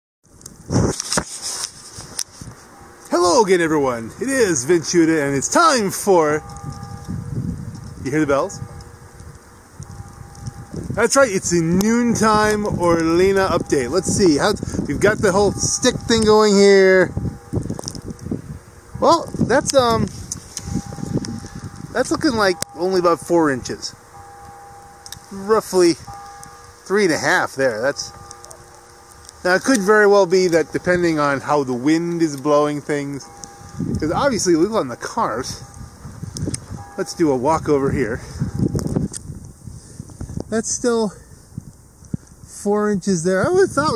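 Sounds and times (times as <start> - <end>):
wind buffeting microphone: 0.3 - 43.9
camera handling rustling: 0.9 - 2.7.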